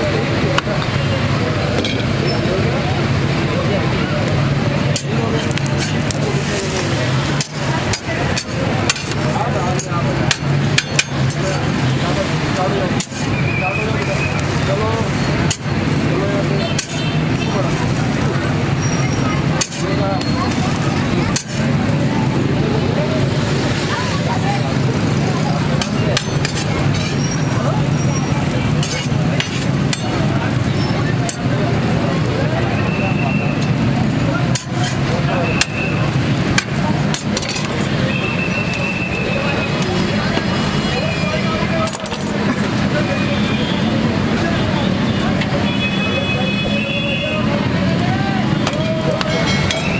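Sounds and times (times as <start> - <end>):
background voices: 0.0 - 45.6
metal spatula scraping griddle: 4.9 - 22.0, 25.0 - 32.0, 34.4 - 37.9.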